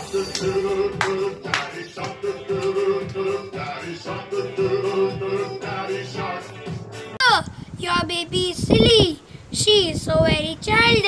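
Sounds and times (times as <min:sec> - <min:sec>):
girl singing unaccompanied: 0:07.2 - 0:11.0.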